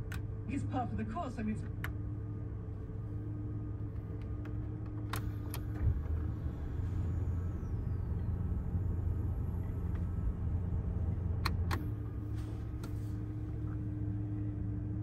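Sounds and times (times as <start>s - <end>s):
car engine idling: 0.0s - 15.0s
steady hum: 0.5s - 15.0s.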